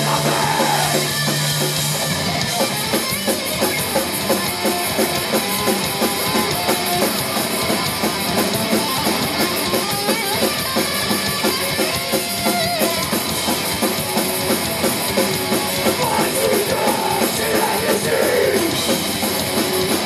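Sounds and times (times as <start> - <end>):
punk band playing loud: 0.0 - 20.0.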